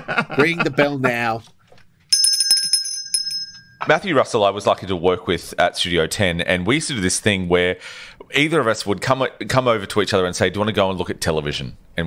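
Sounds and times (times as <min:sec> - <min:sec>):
bell ringing: 0:02.1 - 0:03.9.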